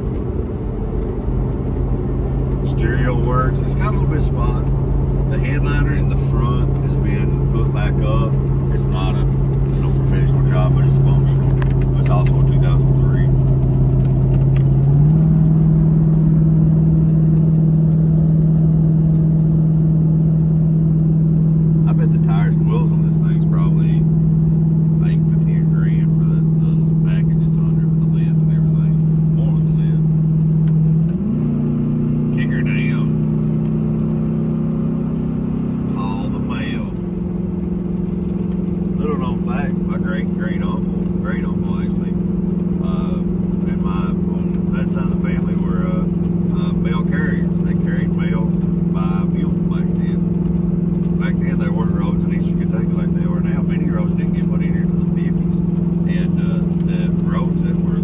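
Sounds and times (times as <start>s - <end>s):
car engine droning at cruise: 0.0s - 58.0s.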